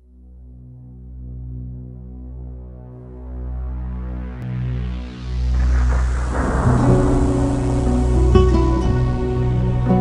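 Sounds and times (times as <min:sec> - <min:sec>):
low drone music: 0:00.0 - 0:10.0
rush of noise: 0:04.6 - 0:09.8.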